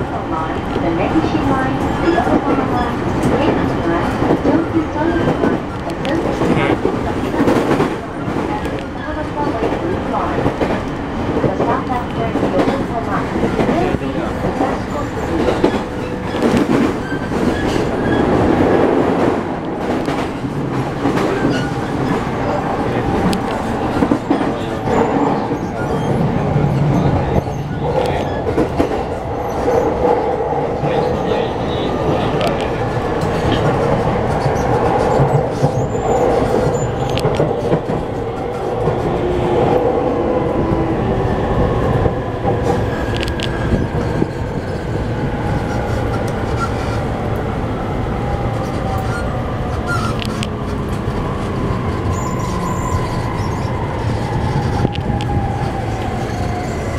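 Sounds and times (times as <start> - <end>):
train car rumble: 0.0 - 56.9.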